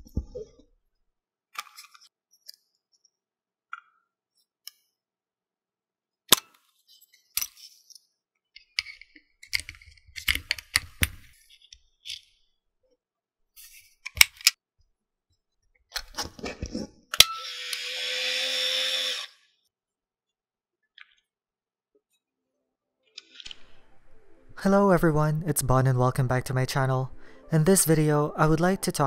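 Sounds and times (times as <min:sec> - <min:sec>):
film-advance motor whirring: 0:17.4 - 0:19.4.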